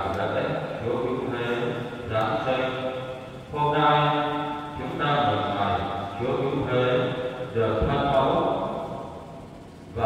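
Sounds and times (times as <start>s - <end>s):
man chanting: 0.0s - 8.7s.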